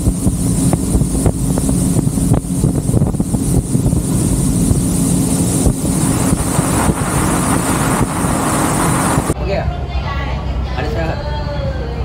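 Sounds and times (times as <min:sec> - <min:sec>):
motorboat engine running: 0:00.0 - 0:09.4
wind noise on microphone: 0:00.0 - 0:09.4.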